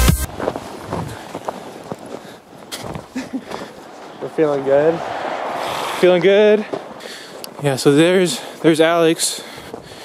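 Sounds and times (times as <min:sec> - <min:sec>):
electronic dance music: 0:00.0 - 0:00.3
footsteps crunching on snow: 0:00.0 - 0:05.0, 0:05.6 - 0:10.0.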